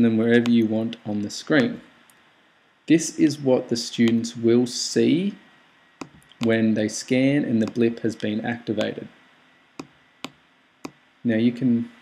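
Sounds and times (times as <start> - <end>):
computer mouse clicks: 0.4 - 0.7, 6.0 - 6.6, 7.6 - 9.0.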